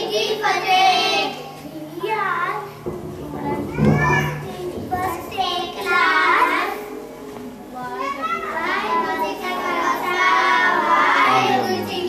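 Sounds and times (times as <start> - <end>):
children singing a prayer: 0.0 - 12.0.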